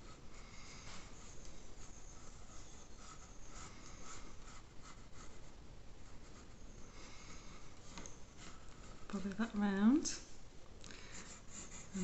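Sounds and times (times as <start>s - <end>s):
pencil scratching on paper: 0.0s - 9.6s, 11.1s - 12.0s.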